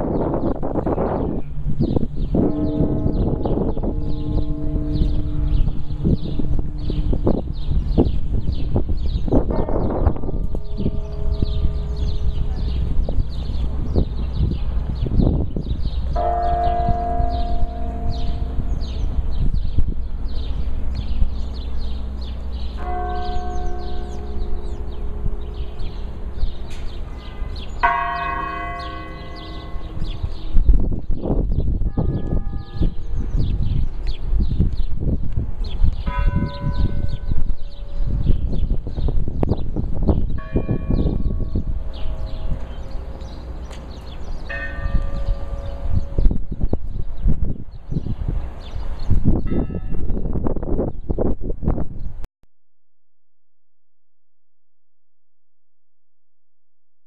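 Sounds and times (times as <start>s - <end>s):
low rumble: 0.0s - 48.6s
church bell ringing: 0.1s - 15.0s, 15.6s - 33.8s, 35.8s - 46.7s, 49.4s - 50.7s.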